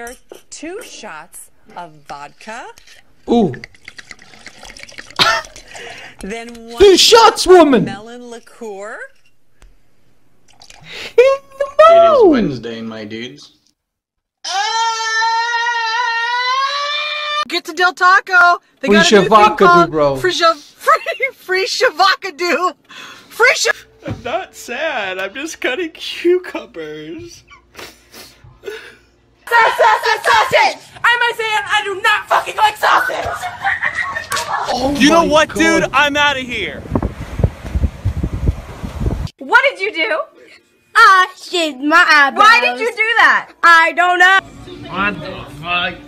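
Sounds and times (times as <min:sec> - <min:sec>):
man screaming: 0:14.4 - 0:17.4
wind buffeting microphone: 0:35.3 - 0:39.3.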